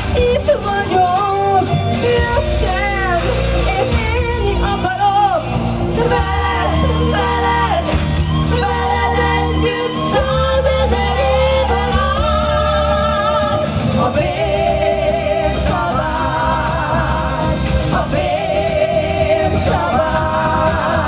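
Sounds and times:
amplified backing music: 0.0s - 21.0s
vocal group singing: 0.0s - 21.0s.

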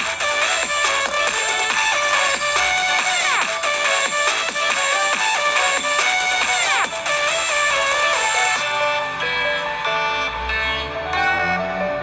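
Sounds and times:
electronic dance music on speaker: 0.0s - 12.0s.

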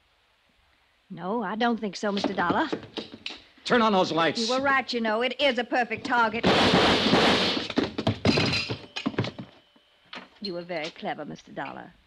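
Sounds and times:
sharp knocks and thuds: 2.1s - 3.5s, 5.9s - 9.6s.

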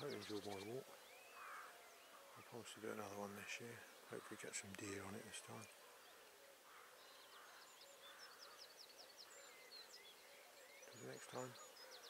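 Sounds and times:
faint songbirds singing: 0.0s - 12.0s.

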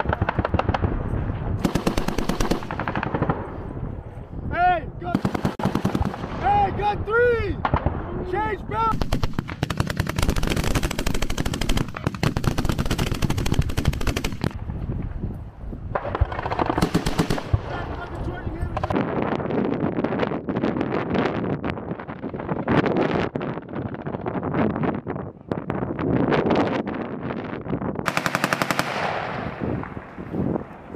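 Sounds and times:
machine gun rapid bursts: 1.6s - 3.0s, 8.9s - 14.5s, 16.4s - 17.5s, 28.1s - 29.0s
scattered gunshots: 1.6s - 3.5s, 5.1s - 6.4s, 8.9s - 14.6s, 16.0s - 18.0s.

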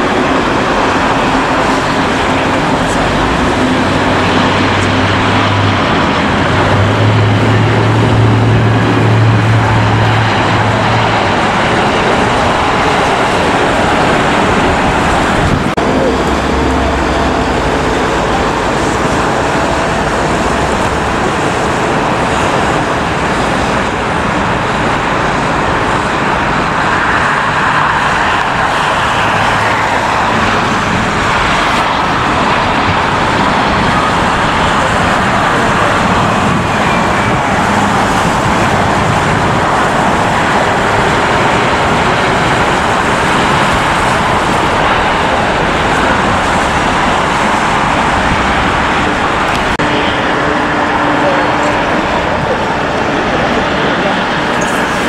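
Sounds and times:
jet engines roaring: 0.0s - 55.0s.

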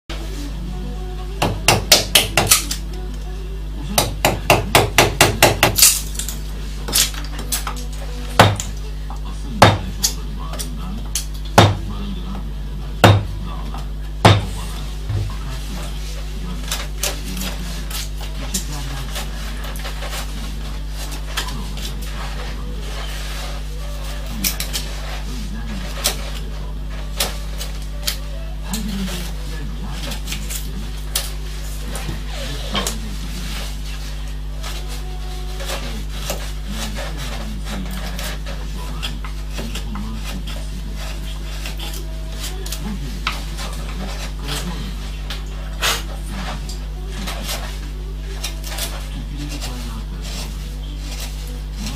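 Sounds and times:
steady electrical hum: 0.1s - 51.9s
tools knocking on bench: 4.0s - 5.8s, 14.2s - 14.5s.

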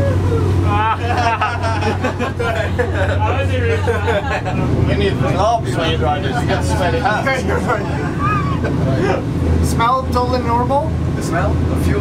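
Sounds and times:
powerboat engine drone: 0.0s - 12.0s
man talking or laughing: 0.1s - 5.0s.

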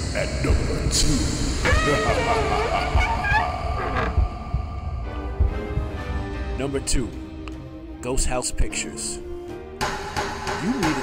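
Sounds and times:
man laughing: 1.7s - 3.6s
deep slow thuds: 3.8s - 6.6s.

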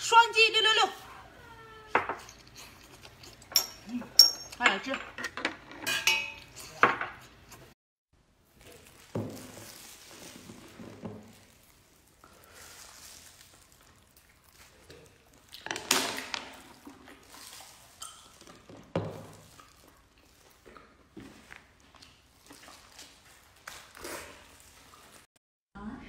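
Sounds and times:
chopsticks clinking on shells: 1.9s - 6.9s
chewing: 2.2s - 3.5s, 11.4s - 15.8s, 16.6s - 25.3s
slurping shellfish meat: 2.2s - 3.5s, 8.5s - 25.3s.

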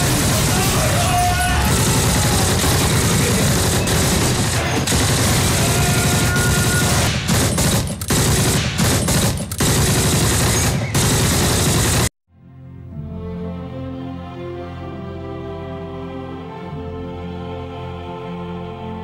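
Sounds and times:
machine-gun and rifle fire: 0.0s - 12.1s.

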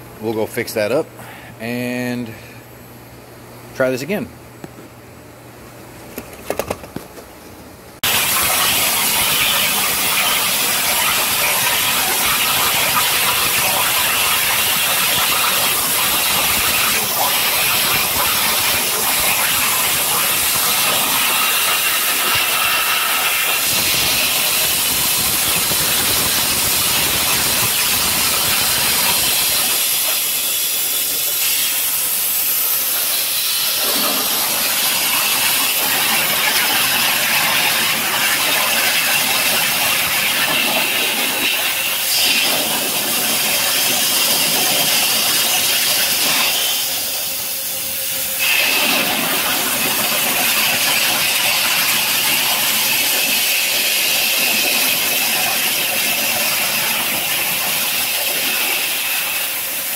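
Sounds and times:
waterjet loud steady hiss: 8.0s - 59.9s.

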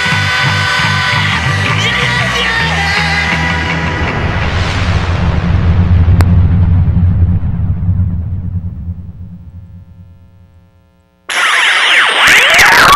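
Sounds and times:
closing music low rumbling: 2.2s - 11.2s.

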